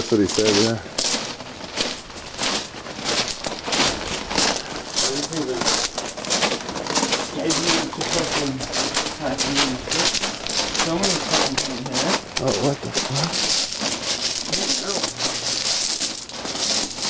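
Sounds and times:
footsteps crunching on gravel: 0.0s - 17.0s.

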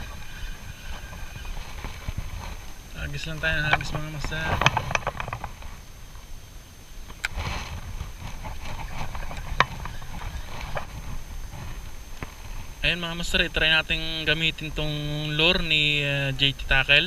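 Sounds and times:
wind and water rumble: 0.0s - 17.0s.

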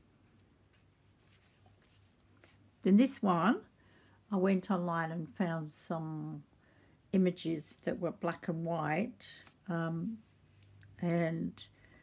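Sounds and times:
paper page turning: 0.7s - 2.6s.

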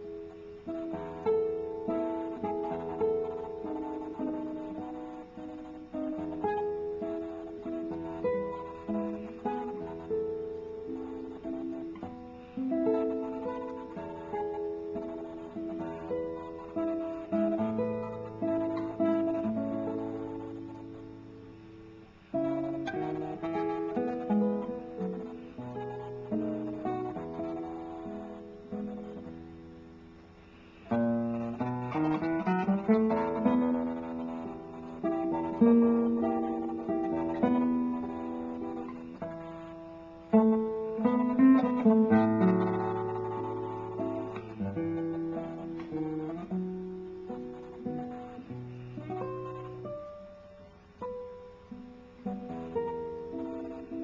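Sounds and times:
classical guitar fingerstyle: 0.0s - 54.0s.

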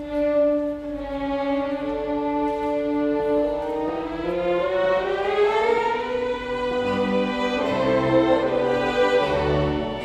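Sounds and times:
orchestra playing classical music: 0.0s - 10.0s.

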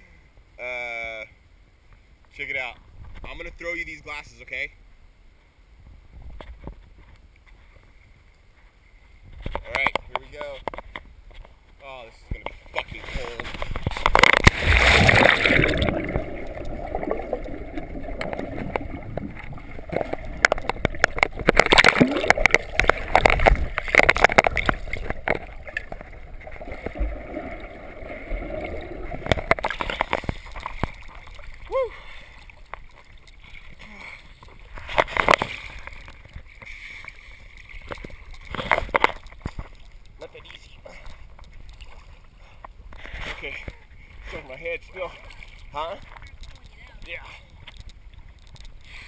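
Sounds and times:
muffled underwater water noise: 0.0s - 49.0s
sharp underwater clicks: 12.3s - 31.7s, 45.4s - 49.0s
water sloshing and splashing: 12.3s - 48.8s
underwater bubbling: 13.4s - 40.2s.

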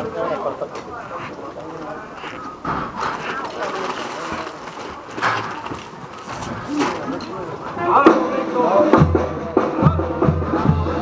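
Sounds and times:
horse hooves stepping: 0.0s - 8.2s
people talking: 0.0s - 11.0s.

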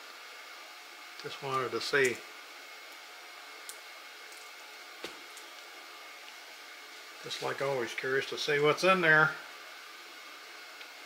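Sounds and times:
low room tone hiss: 0.0s - 11.0s.

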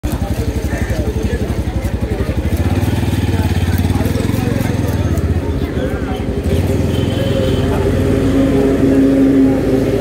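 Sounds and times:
small engine idling: 0.1s - 8.4s.

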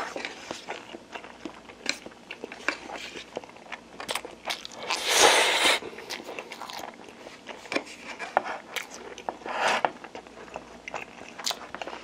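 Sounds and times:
chewing noodles: 0.0s - 12.0s.

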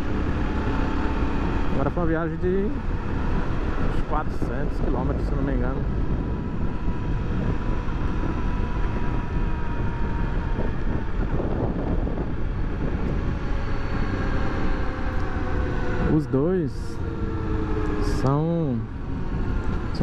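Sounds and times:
motorcycle engine running: 0.0s - 20.0s
road noise: 0.0s - 20.0s
wind noise: 0.0s - 20.0s.

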